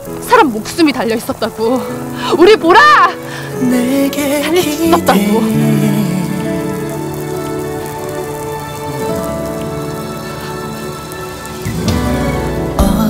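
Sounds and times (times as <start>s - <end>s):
rain falling: 0.0s - 13.0s
soft sustained music chords: 0.0s - 13.0s.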